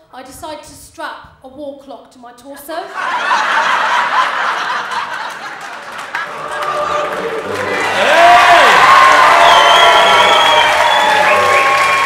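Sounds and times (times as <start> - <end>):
audience laughing loudly: 2.9 - 12.0.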